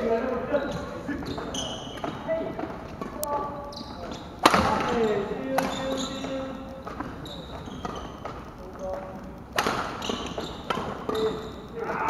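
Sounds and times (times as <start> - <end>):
voices in hall: 0.0 - 12.0
short high squeaks: 0.6 - 2.2, 3.6 - 8.2, 9.9 - 11.8.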